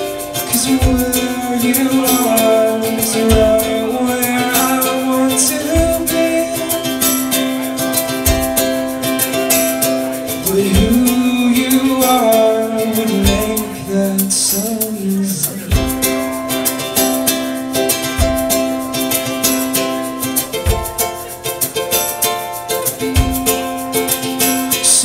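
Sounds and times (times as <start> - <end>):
drum kit: 0.0 - 25.0
low drum beat: 0.0 - 25.0
strummed ukulele: 0.0 - 25.0.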